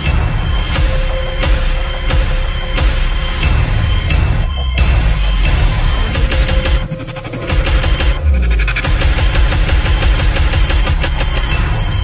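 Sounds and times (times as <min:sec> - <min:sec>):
film music cues: 0:00.0 - 0:12.0.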